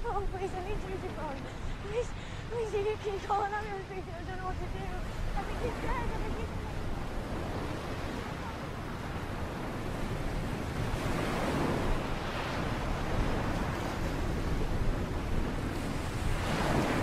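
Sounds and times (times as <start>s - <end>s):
sea waves washing onto beach: 0.0s - 17.0s
wind buffeting microphone: 0.0s - 17.0s.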